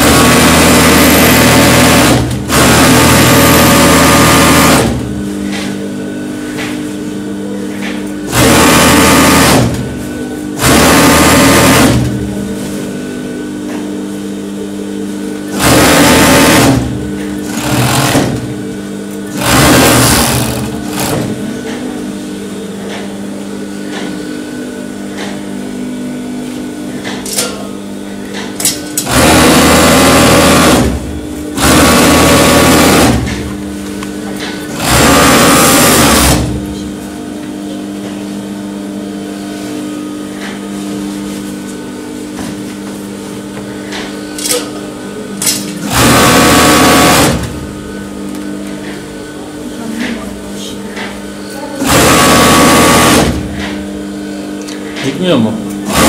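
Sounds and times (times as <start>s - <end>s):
overlock sewing machine stitching: 0.0s - 5.0s, 8.3s - 9.8s, 10.6s - 12.2s, 15.5s - 18.5s, 19.3s - 21.4s, 29.0s - 31.0s, 31.6s - 33.3s, 34.7s - 36.6s, 45.8s - 47.6s, 51.8s - 53.6s.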